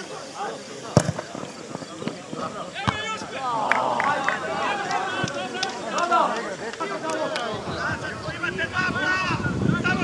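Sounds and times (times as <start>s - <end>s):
football kicked hard: 1.0s - 3.3s
people calling out: 2.7s - 9.2s.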